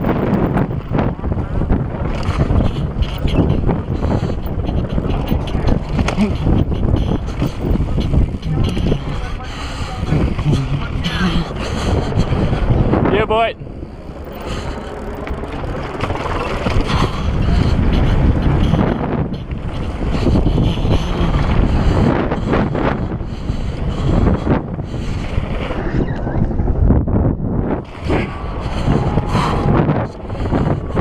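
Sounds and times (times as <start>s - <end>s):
bike rattling: 0.0s - 31.0s
wind buffeting microphone: 0.0s - 31.0s.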